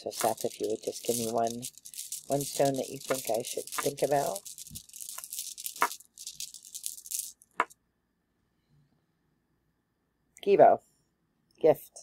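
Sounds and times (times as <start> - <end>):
stones rattling and clicking: 0.0 - 7.7.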